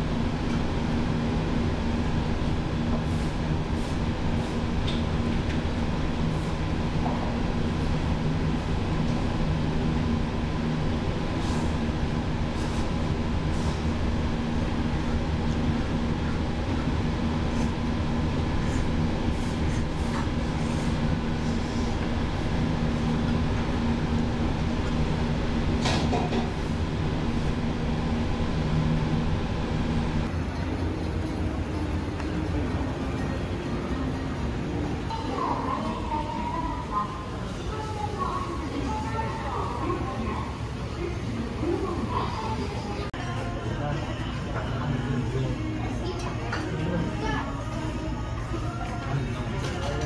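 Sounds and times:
low mechanical hum: 0.0 - 50.0.

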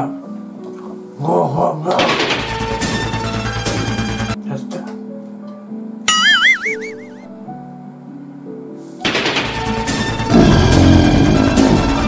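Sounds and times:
background music: 0.0 - 12.0
wobbling whistle-like tone: 6.1 - 7.3
dense rapid rattling noise: 9.1 - 12.0.

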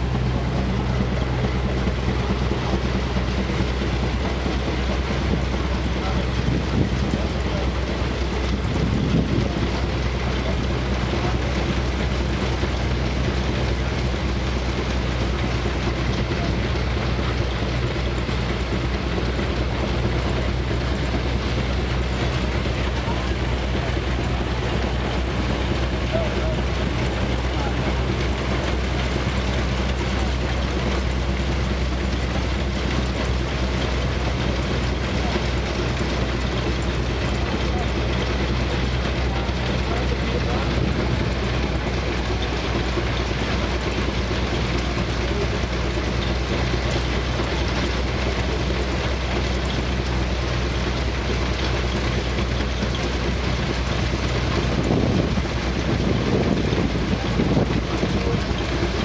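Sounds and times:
threshing machine drone: 0.0 - 59.0.

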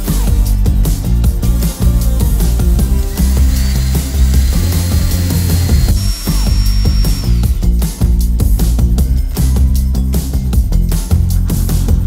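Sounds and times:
background music with steady beat: 0.0 - 12.0
electric drill whine: 2.2 - 7.9.

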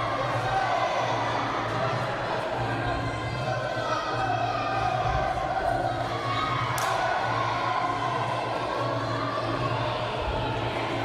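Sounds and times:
crowd murmur: 0.0 - 11.0
faint music: 0.0 - 11.0.

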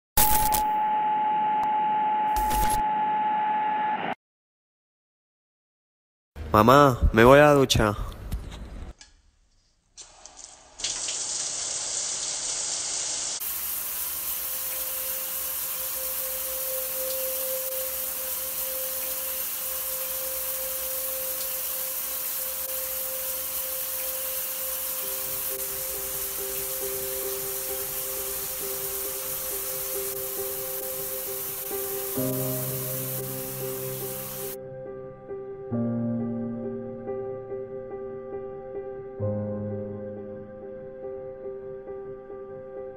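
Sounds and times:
shower water spray hissing: 10.0 - 34.6
soft background music: 14.6 - 42.9.

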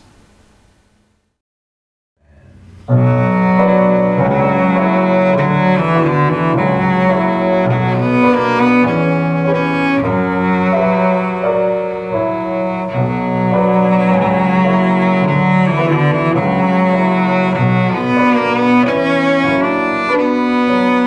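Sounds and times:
bowed cello melody: 2.3 - 21.0.

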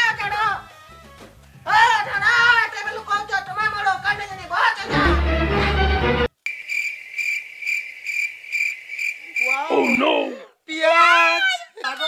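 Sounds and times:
cricket chirping: 6.4 - 10.3.

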